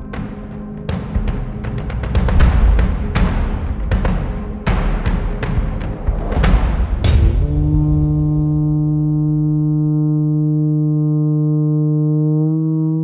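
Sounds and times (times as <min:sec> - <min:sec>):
drum stroke: 0:00.9 - 0:09.3
wooden horn low note: 0:07.1 - 0:13.0.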